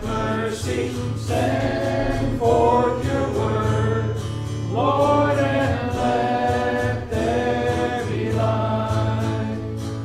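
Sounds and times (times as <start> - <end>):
congregation singing a hymn: 0.0 - 10.0.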